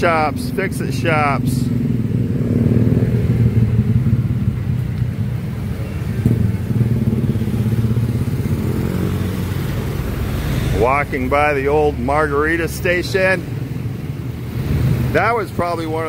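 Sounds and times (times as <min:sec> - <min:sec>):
motorcycle engines passing: 0:00.0 - 0:16.0.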